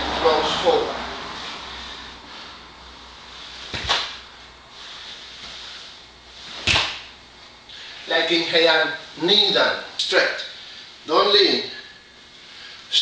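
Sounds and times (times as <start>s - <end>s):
sharp snaps of gi: 3.7s - 4.2s, 6.6s - 7.2s.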